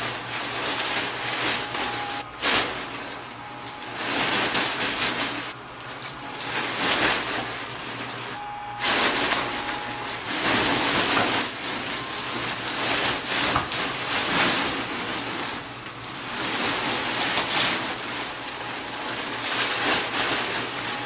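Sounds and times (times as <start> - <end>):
nylon fabric rustling: 0.0 - 5.6, 6.4 - 21.0
blower fan humming: 0.0 - 21.0.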